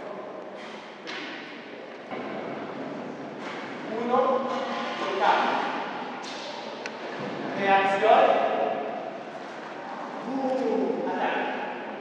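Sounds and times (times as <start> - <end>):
sports hall background noise: 0.0 - 12.0
man speaking in echoing hall: 3.8 - 6.7, 7.4 - 9.1, 9.8 - 12.0.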